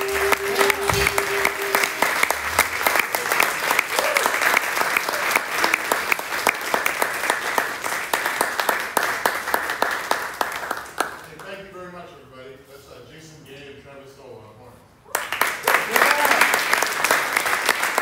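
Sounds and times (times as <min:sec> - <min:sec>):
jazz band playing: 0:00.0 - 0:03.4
audience applauding: 0:00.0 - 0:11.4, 0:15.1 - 0:18.0.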